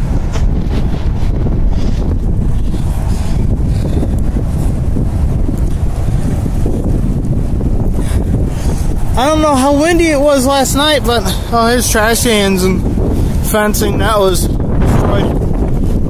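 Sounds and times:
wind rumbling on microphone: 0.0 - 16.0.

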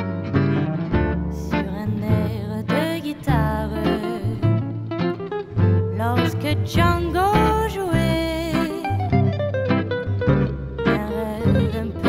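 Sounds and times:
plucked guitar lines: 0.0 - 12.0
sustained bass notes: 0.0 - 12.0
gypsy swing band playing: 0.3 - 12.0.

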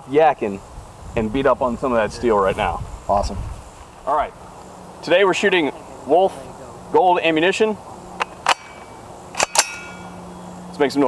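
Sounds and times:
rifle shots: 8.4 - 10.0
metallic ring of steel target: 8.4 - 10.2.

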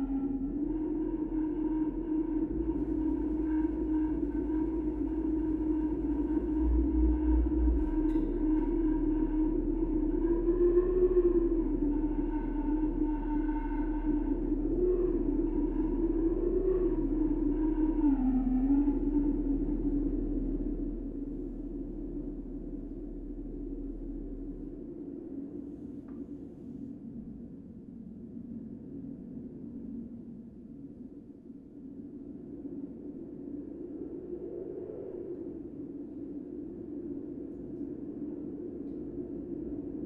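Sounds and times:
electronic drone: 0.0 - 24.9.

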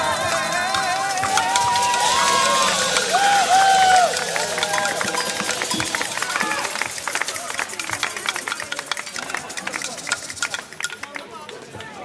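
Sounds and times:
group singing final note: 0.0 - 7.6
audience applause: 0.0 - 10.8
voices chattering and calling out: 0.0 - 12.0.

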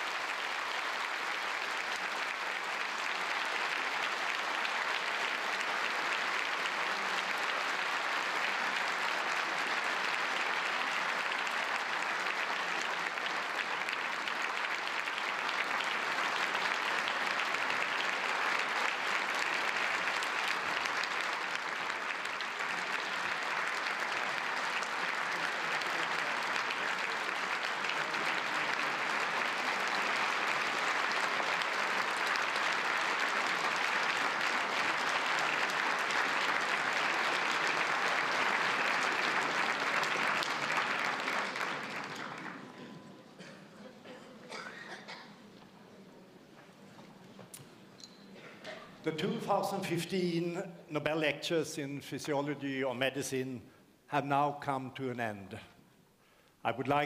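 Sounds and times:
audience applauding: 0.0 - 43.4.

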